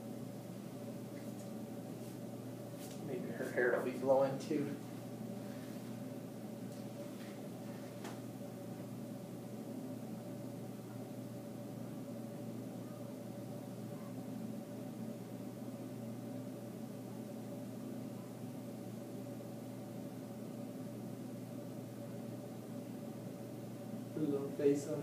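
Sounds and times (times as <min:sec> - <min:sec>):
indoor background hum: 0:00.0 - 0:25.0
faint steady tone: 0:08.4 - 0:25.0.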